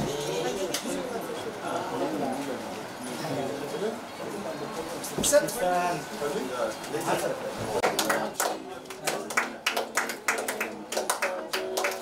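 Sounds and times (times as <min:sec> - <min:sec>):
rhythmic hand clapping: 0:07.8 - 0:12.0.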